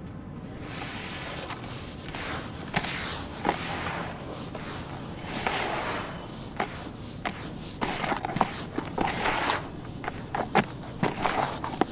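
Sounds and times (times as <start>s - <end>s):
clumps crunching: 0.4s - 11.9s
hands stirring sand-cement mix: 0.4s - 11.9s.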